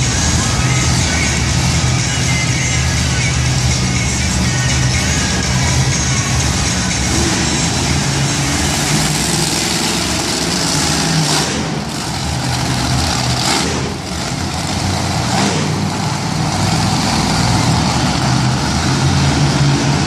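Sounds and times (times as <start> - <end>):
loud truck engines revving: 0.0 - 20.0.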